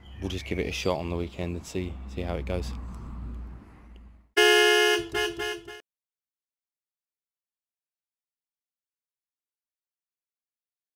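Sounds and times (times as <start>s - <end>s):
horn honks: 4.4s - 5.8s.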